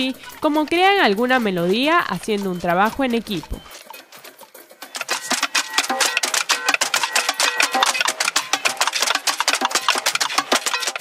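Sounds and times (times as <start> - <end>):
percussion music: 0.0 - 11.0.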